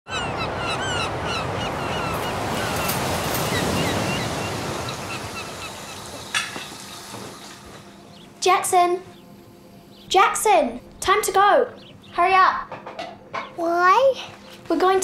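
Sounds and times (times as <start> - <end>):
seabirds calling: 0.1 - 15.0
surf breaking on beach: 1.1 - 7.3.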